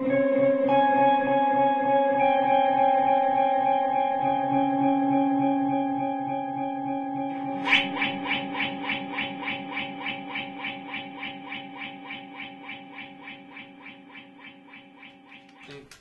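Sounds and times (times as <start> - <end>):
electric guitar with delay echoes: 0.0 - 16.0.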